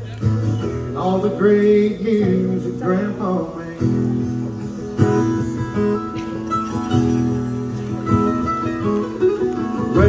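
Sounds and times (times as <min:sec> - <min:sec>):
acoustic guitar: 0:00.0 - 0:10.0
mandolin: 0:03.8 - 0:10.0
electric bass guitar: 0:04.0 - 0:10.0.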